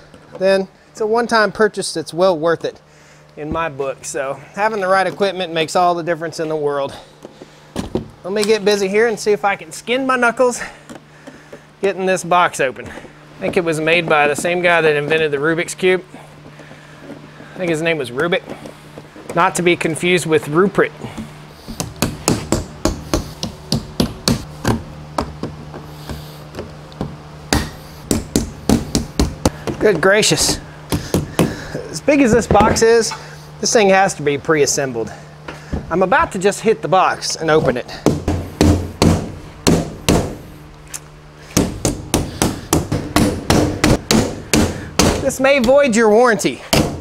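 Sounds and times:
hammer striking wooden crate: 27.5s - 29.8s, 38.0s - 40.4s, 41.5s - 45.8s.

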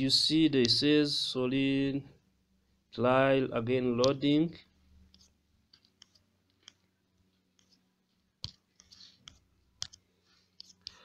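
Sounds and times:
fingertip taps on touchscreen: 8.4s - 10.0s.

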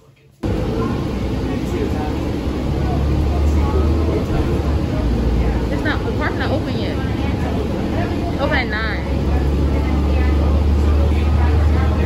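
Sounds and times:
faint voices: 0.0s - 12.0s
bus engine rumble: 0.1s - 12.0s.

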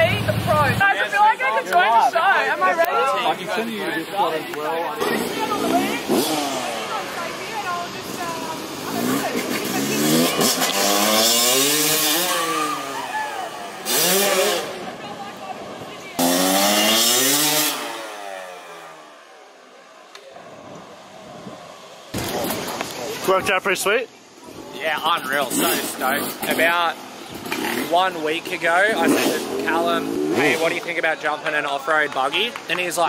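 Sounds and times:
off-road vehicle engine revving: 5.0s - 15.1s, 16.0s - 19.3s, 25.0s - 31.0s.

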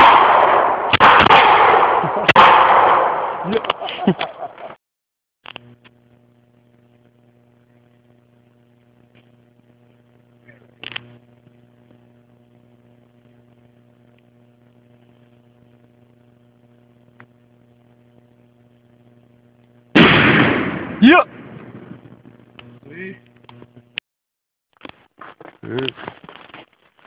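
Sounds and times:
low hum with overtones: 5.5s - 24.0s.

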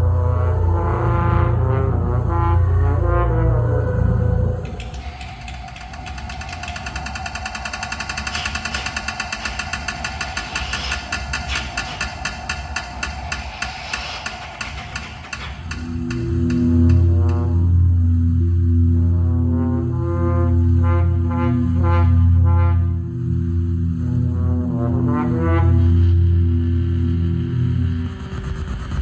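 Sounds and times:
low sustained horn tones: 0.0s - 8.3s, 15.8s - 28.1s
steady electronic tone: 0.0s - 29.0s
rapid electronic pulses: 3.4s - 22.4s, 23.1s - 29.0s.

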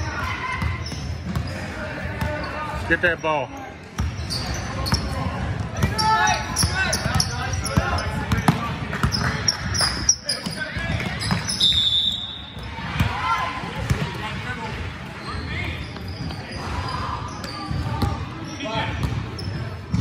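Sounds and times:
sneakers squeaking: 0.0s - 20.0s.

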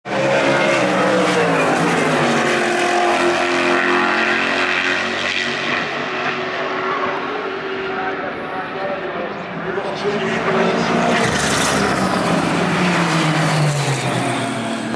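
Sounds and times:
race car engines: 0.0s - 14.9s
race car passing by: 0.1s - 14.9s.

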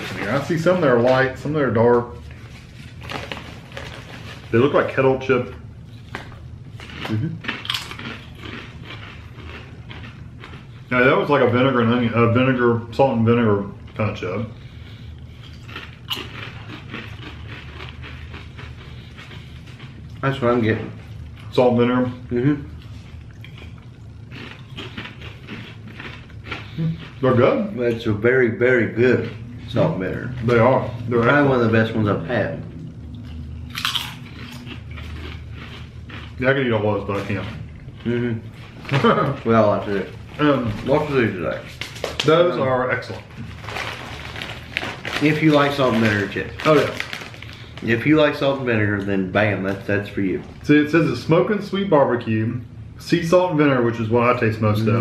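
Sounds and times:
chewing crunchy chips: 2.1s - 5.0s, 5.8s - 12.2s, 13.2s - 28.0s, 32.7s - 50.6s
man speaking: 26.8s - 32.7s, 47.8s - 55.0s.

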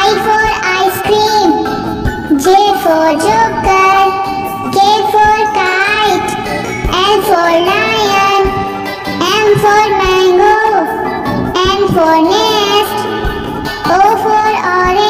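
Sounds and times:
child singing: 0.0s - 1.7s, 2.3s - 13.1s, 13.8s - 15.0s
backing track: 0.0s - 15.0s.

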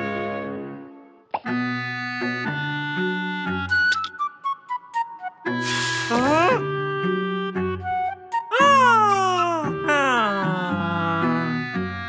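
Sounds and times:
cartoon soundtrack music: 0.0s - 12.0s.

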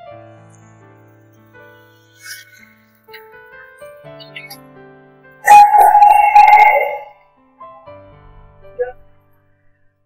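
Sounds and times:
loud sudden sound: 5.5s - 7.1s.

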